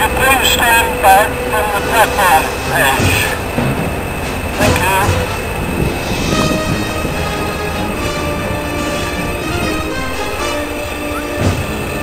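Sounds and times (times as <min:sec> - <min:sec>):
locomotive rumble: 0:00.0 - 0:12.0
music with held notes: 0:01.0 - 0:12.0.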